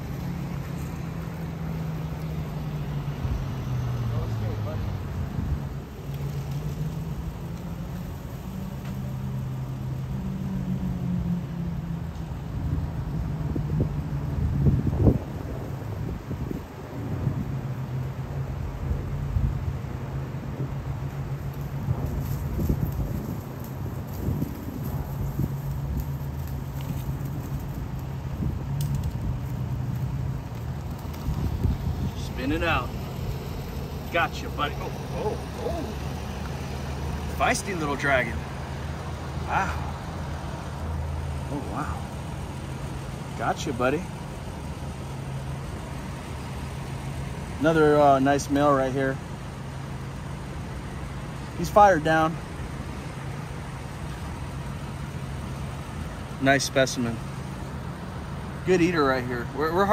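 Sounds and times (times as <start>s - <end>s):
vehicle engine running: 0.0s - 59.9s.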